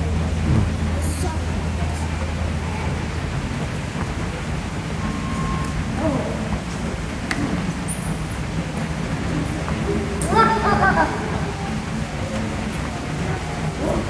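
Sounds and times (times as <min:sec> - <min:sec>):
deeper hum: 0:00.0 - 0:07.3
faint voices: 0:00.0 - 0:07.8, 0:08.4 - 0:14.0
low hum: 0:00.0 - 0:14.0
rushing background noise: 0:00.0 - 0:14.0.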